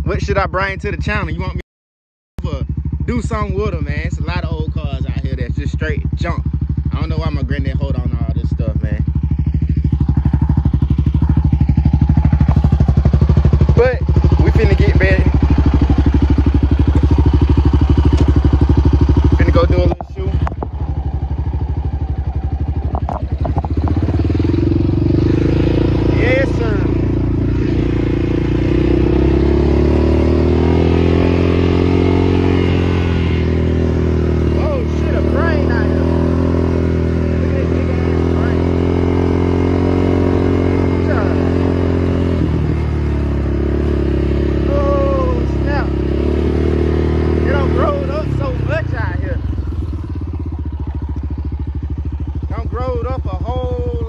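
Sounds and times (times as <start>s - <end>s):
quad bike engine running: 0.0s - 1.6s, 2.4s - 54.0s.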